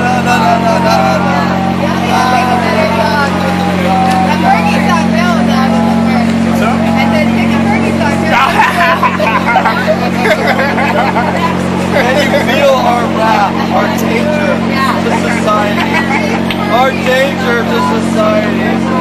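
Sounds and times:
floodlight mechanical hum: 0.0s - 19.0s
voices talking over one another: 0.0s - 19.0s.

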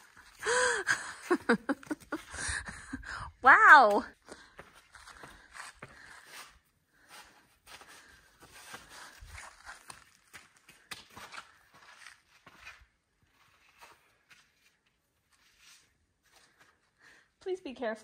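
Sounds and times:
footsteps on rock: 3.6s - 12.9s.

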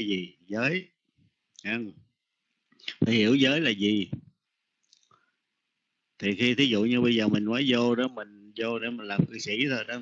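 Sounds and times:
man speaking: 0.0s - 1.0s, 1.6s - 2.1s, 2.8s - 4.3s, 6.2s - 10.0s.

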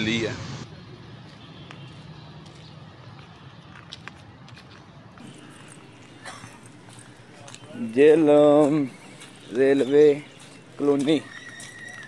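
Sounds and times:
footsteps on loose bricks: 1.3s - 12.0s
man speaking: 7.4s - 11.3s.

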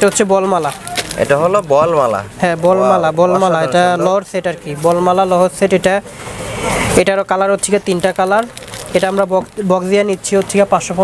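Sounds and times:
man talking: 0.0s - 6.1s, 6.9s - 11.0s.

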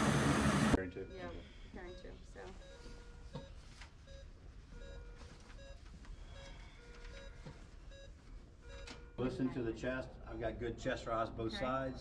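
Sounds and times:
medical equipment beeping: 0.7s - 9.5s.

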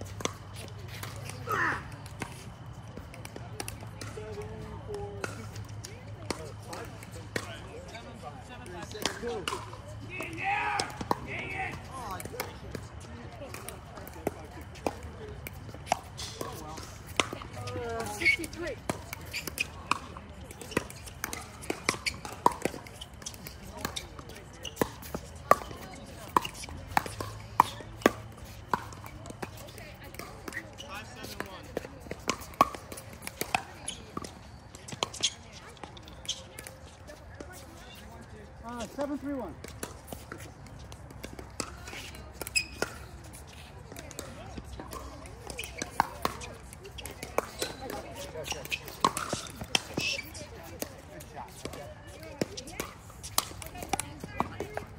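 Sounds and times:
players' voices: 0.0s - 54.9s
paddles hitting plastic balls: 44.1s - 51.8s.

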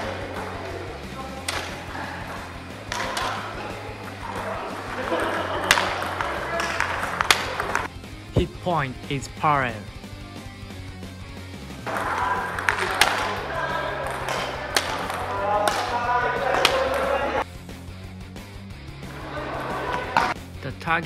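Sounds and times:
background music with steady beat: 0.0s - 21.0s
sports hall ambience: 0.0s - 21.0s.

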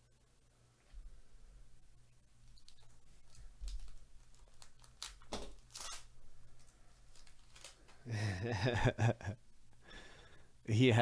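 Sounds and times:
wrapper crinkling: 2.5s - 8.0s
foil pack tearing: 3.6s - 6.1s, 7.1s - 7.9s.

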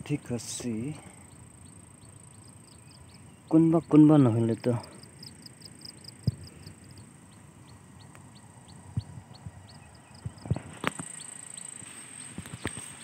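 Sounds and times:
insect chirping: 0.0s - 13.0s
insects droning: 0.0s - 13.0s.

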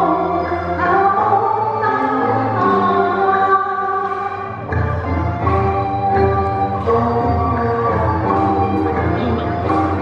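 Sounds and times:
woman singing opera into microphone: 0.0s - 4.6s.

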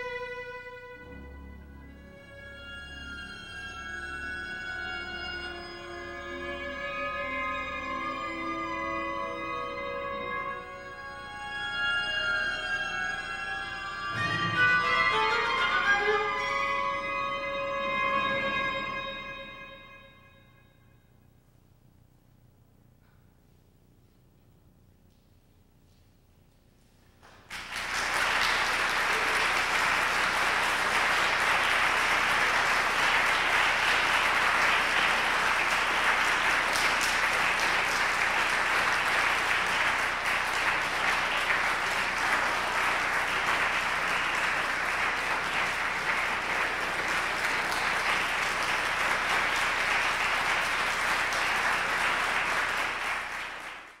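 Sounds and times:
audience applauding: 27.3s - 54.0s.

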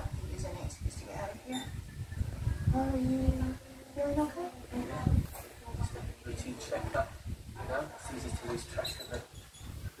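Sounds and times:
voices talking indistinctly: 0.0s - 10.0s.

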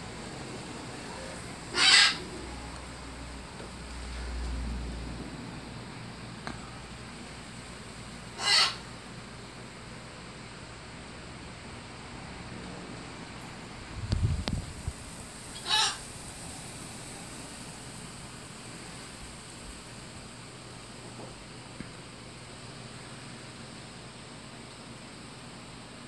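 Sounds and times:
harsh bird calls: 1.1s - 2.6s, 8.3s - 8.9s, 15.5s - 16.0s
wind buffeting microphone: 13.8s - 15.1s.

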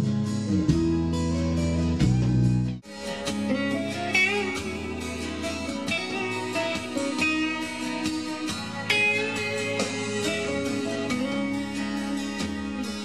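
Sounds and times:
bass guitar low notes: 0.0s - 2.8s
rock music: 0.0s - 13.0s
electric guitar bent notes: 3.0s - 13.0s.

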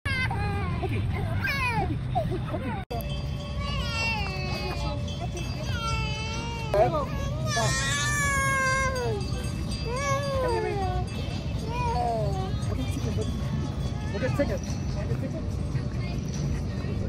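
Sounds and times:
toddler squealing and whining: 3.6s - 5.0s, 5.6s - 10.8s.

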